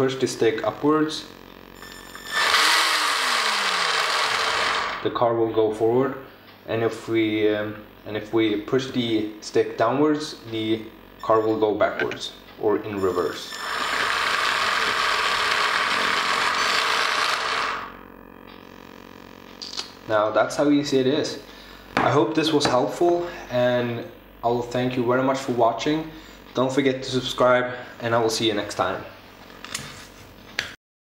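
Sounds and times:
toy car motor whirring: 1.8s - 5.0s, 13.5s - 17.9s.

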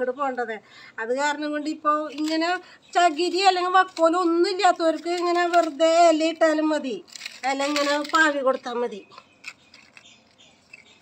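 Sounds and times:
dry leaves crinkling: 3.1s - 11.0s.

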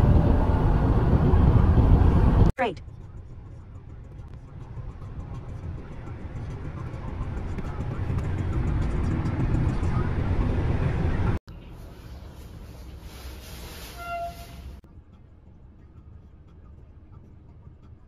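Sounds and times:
road noise inside car: 0.0s - 18.0s
wind and road rush: 0.0s - 18.0s.

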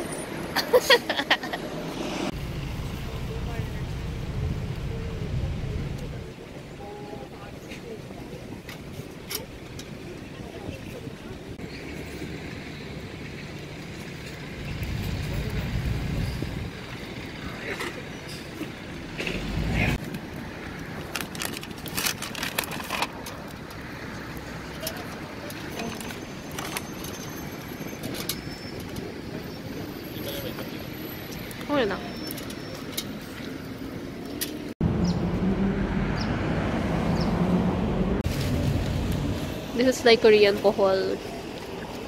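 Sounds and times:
low outdoor rumble: 0.7s - 25.6s
wind buffeting microphone: 14.6s - 16.8s
paper bag crackling: 21.1s - 23.0s.

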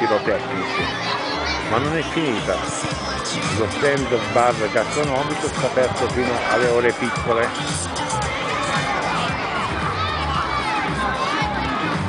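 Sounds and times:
adult crowd voices: 0.0s - 12.0s
young children shouting: 0.0s - 12.0s.

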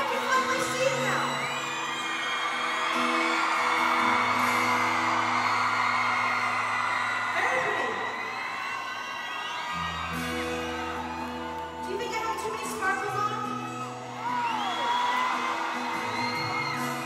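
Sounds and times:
crowd cheering and screaming: 0.0s - 17.0s.

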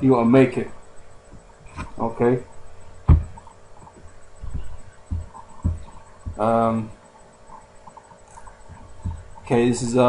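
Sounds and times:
faint steady hum: 0.0s - 10.0s
soft deep thumps: 3.0s - 6.8s, 8.6s - 9.4s.

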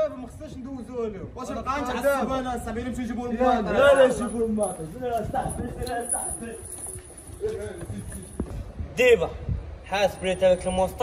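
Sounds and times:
footsteps on hard pavement: 4.8s - 9.8s.

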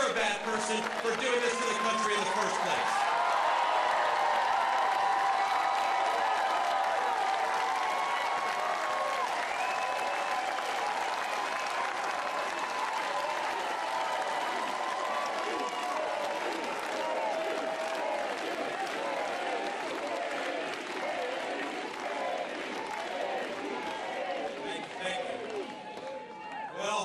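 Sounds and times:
crowd clapping: 0.0s - 26.7s
crowd shouting and whooping: 1.0s - 27.0s.

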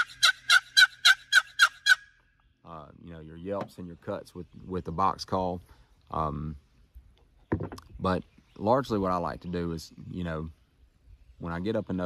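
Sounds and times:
turkey box call yelps: 0.0s - 2.3s.

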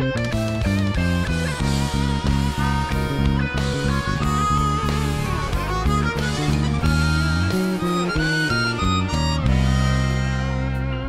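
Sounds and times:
drums: 0.0s - 11.0s
electric bass: 0.0s - 11.0s
harmonica melody with vibrato: 0.0s - 11.0s
keyboards: 0.0s - 11.0s.

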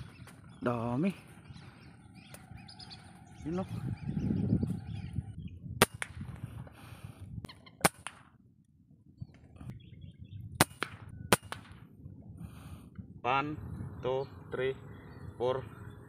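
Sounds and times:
air rifle shots: 5.8s - 6.3s, 7.8s - 8.4s, 10.6s - 11.9s.

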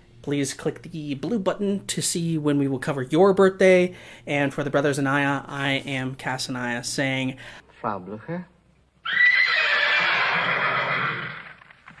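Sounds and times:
horses whinnying: 9.0s - 11.9s.

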